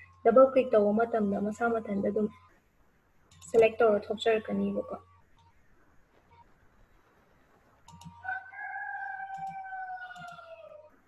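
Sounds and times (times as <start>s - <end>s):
rooster crowing: 8.1s - 11.0s.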